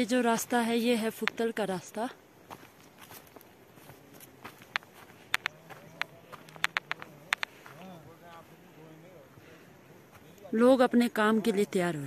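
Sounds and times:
woman's voice: 0.0s - 2.2s, 10.5s - 12.0s
footsteps on rough track: 0.0s - 8.7s, 9.3s - 10.9s.

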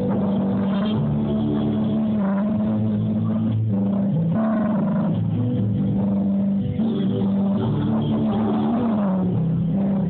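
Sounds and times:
live band playing: 0.0s - 10.0s
low bass notes: 0.0s - 10.0s.

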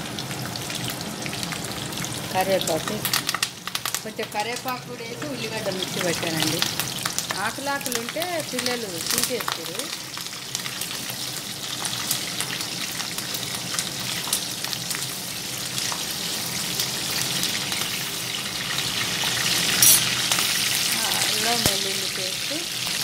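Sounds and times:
onions sizzling in hot oil: 0.0s - 23.0s.

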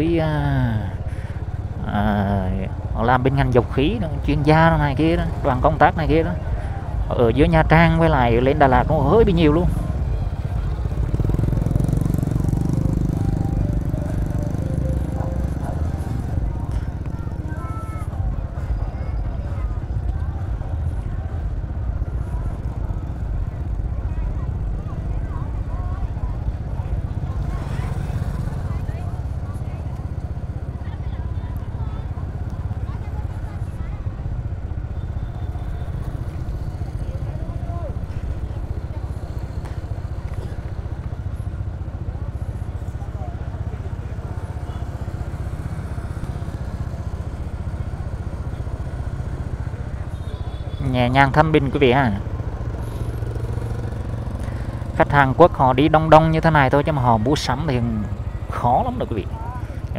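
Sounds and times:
motorbike engine rumble: 0.0s - 59.9s
faint voices: 6.3s - 50.8s.

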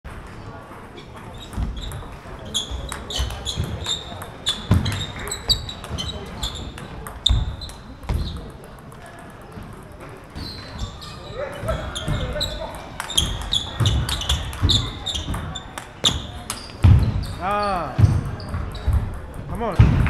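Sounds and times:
ping pong ball clicking: 2.9s - 10.4s, 12.6s - 16.7s.

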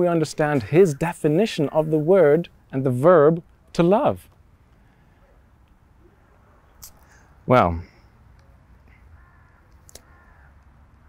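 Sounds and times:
faint drawn-out bird call: 8.9s - 10.6s.

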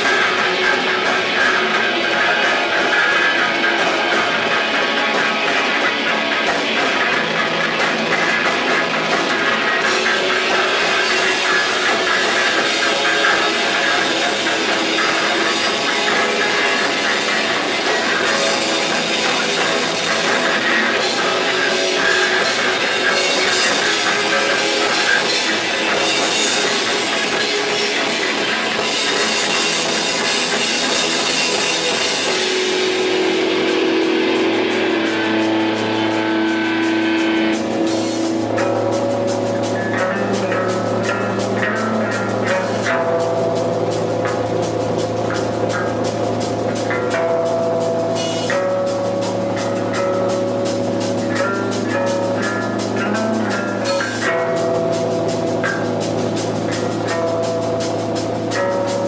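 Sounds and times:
held electric guitar notes: 0.0s - 59.0s
steady drumming: 0.0s - 59.0s.

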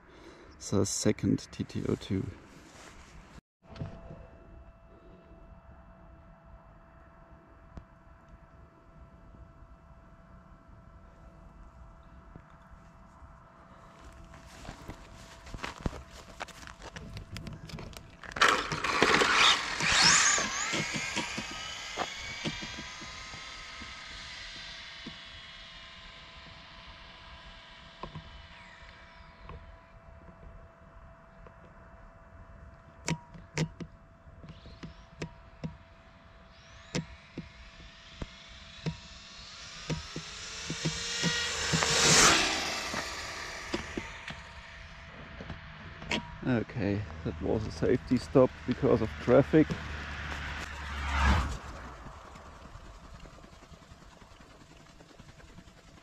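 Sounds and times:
rc car electric motor whining: 16.9s - 31.1s, 34.2s - 46.3s, 47.7s - 56.0s.

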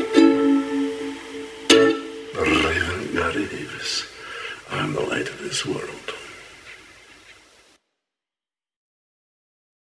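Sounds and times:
ukulele strum: 0.0s - 3.1s
man's voice: 2.3s - 6.4s.

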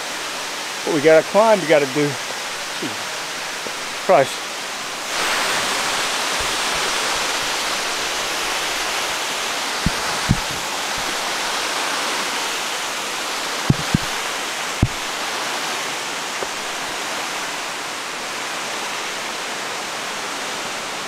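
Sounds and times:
stream rushing: 0.0s - 21.0s
short low thumps: 9.8s - 11.2s, 13.7s - 14.2s.

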